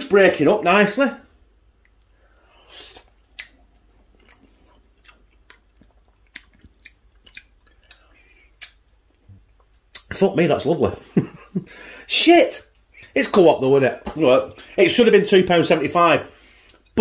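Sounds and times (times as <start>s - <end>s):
person chewing food: 1.7s - 10.1s.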